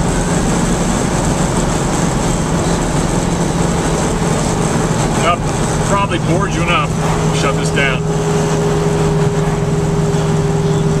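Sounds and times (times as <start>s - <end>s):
car engine drone: 0.0s - 11.0s
road noise: 0.0s - 11.0s.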